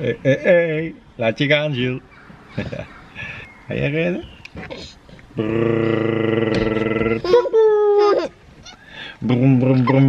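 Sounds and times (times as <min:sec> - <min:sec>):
baby squealing: 0:07.2 - 0:08.9.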